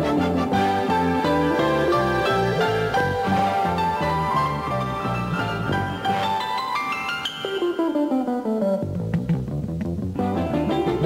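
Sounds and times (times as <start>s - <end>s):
double bass: 0.0s - 6.3s, 8.8s - 11.0s
piano: 0.0s - 11.0s.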